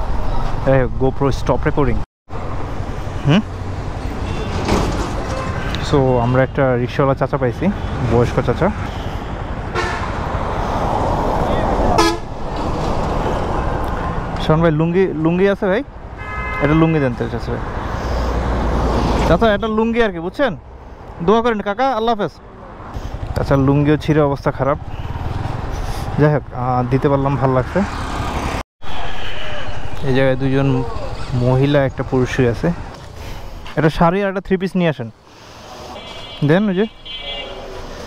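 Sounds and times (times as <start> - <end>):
road and traffic noise: 0.0 - 38.0
motorcycle moving: 6.9 - 15.3, 22.4 - 28.6
wind rushing over microphone: 8.0 - 14.4
short vehicle horn toot: 16.2 - 16.8, 36.0 - 37.6.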